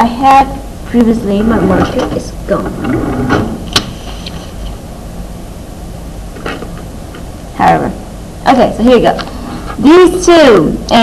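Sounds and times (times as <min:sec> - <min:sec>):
steady low hum: 0:00.0 - 0:11.0
desk handling noise: 0:01.5 - 0:04.3.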